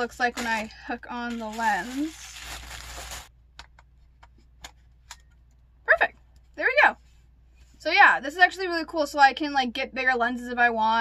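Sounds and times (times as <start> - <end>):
plastic wrapping rustling: 0.0 - 3.3.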